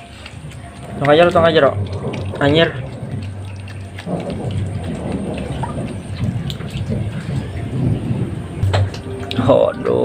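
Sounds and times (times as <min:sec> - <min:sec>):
otter chewing fish: 0:00.0 - 0:09.0.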